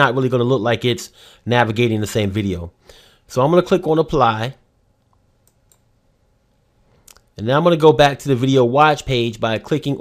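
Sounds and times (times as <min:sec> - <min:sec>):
computer mouse clicks: 0:05.0 - 0:05.9.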